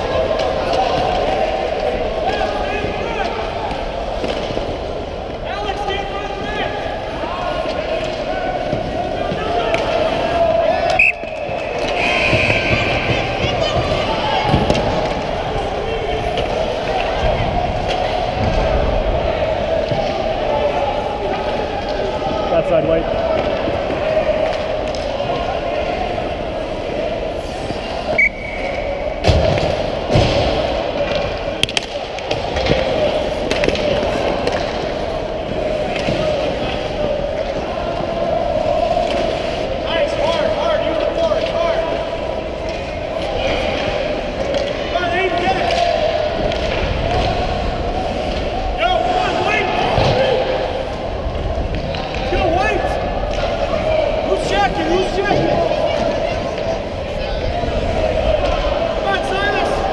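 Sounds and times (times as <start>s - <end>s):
hockey sticks and puck knocking: 10.8s - 15.4s, 29.2s - 38.1s.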